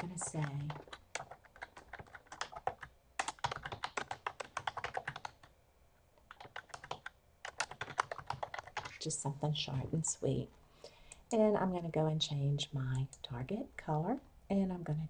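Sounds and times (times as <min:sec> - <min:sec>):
typing on computer keyboard: 0:00.0 - 0:05.5, 0:06.3 - 0:09.0.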